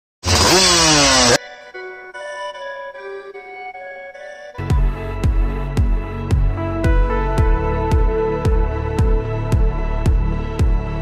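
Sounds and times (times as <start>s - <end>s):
two-stroke engine revving: 0.2s - 1.4s
intro music: 4.6s - 11.0s.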